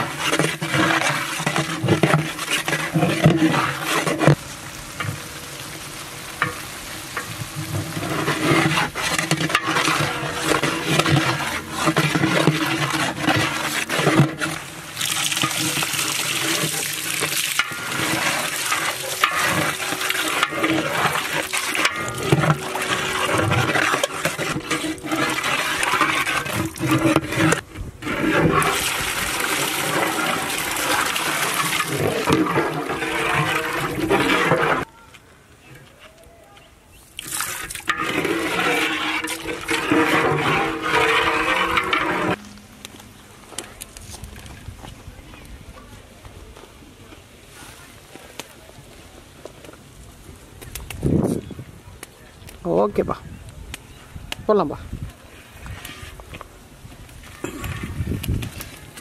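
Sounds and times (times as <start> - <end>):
ladle stirring and splashing: 0.0 - 34.9, 37.0 - 42.8
water pouring into a metal pot: 0.0 - 34.9, 37.2 - 42.5.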